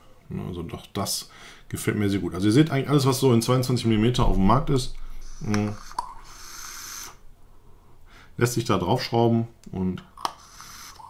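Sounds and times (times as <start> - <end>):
person exhaling vapour: 5.1 - 7.2, 10.3 - 11.0.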